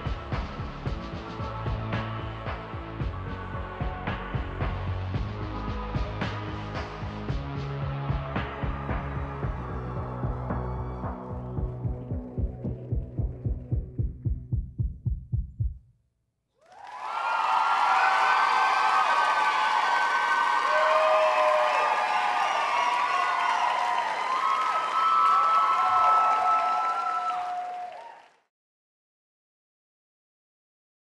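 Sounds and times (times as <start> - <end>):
audience applause and cheering: 0.0 - 13.0, 16.6 - 28.5
music with throbbing bass pulse: 0.0 - 15.8
high whoops: 16.6 - 28.4.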